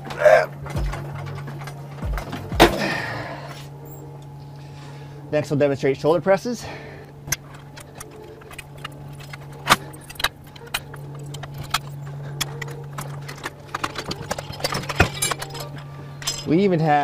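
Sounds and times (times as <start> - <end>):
exercise machine metallic clanks: 0.0 - 3.1, 7.2 - 17.0
ventilation hum: 0.0 - 17.0.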